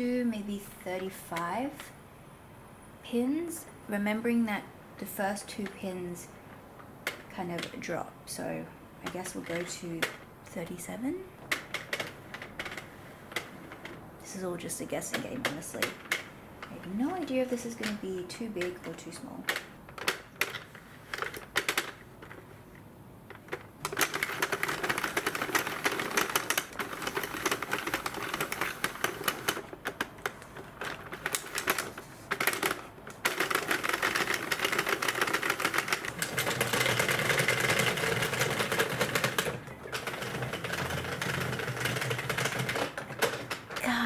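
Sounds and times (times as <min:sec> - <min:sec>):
knitting machine clicking: 0:06.8 - 0:08.4, 0:09.0 - 0:22.5, 0:23.3 - 0:44.0.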